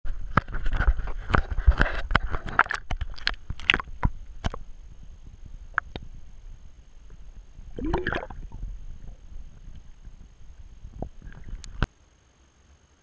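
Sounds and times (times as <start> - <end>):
water splashing and sloshing: 0.4 - 11.9
faint underwater hush: 3.5 - 11.9.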